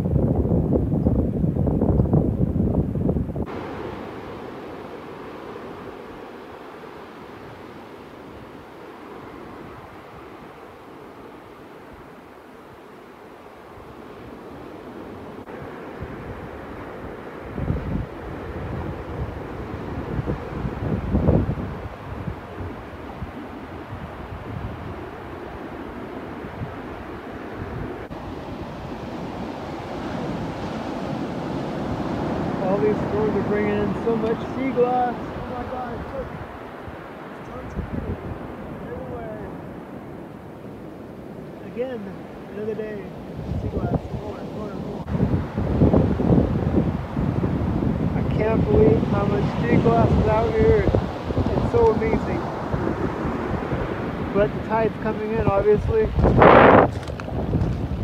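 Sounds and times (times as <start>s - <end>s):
wind buffeting microphone: 0.0s - 58.0s
surf on pebble beach: 3.3s - 58.0s.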